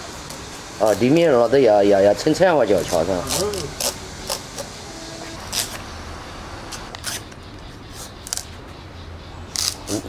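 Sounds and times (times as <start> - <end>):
peeler scraping pumpkin skin: 2.8 - 5.8, 6.8 - 8.5, 9.5 - 10.0.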